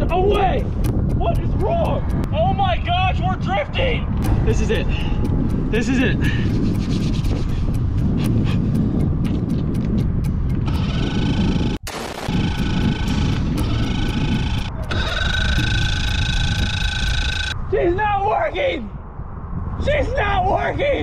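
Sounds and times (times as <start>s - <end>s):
music with ticking beat: 0.0s - 2.3s, 4.2s - 17.6s
wind rumble on microphone: 0.0s - 21.0s.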